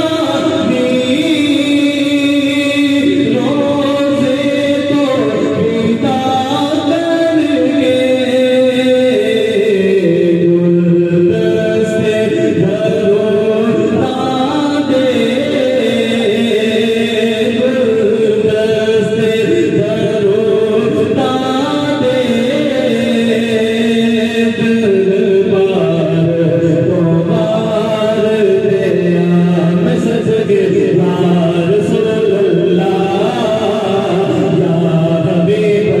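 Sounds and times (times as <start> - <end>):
devotional chanting voice: 0.0 - 36.0.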